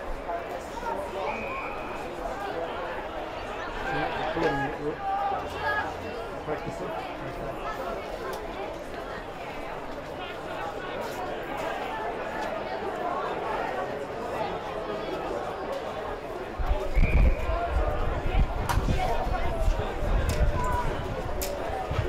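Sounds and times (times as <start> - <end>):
spectators talking and calling out: 0.0 - 22.0.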